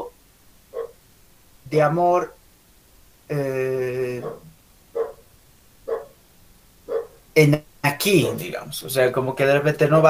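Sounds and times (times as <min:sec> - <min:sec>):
sharp animal calls: 0:00.7 - 0:01.0, 0:04.1 - 0:06.2, 0:06.8 - 0:07.3.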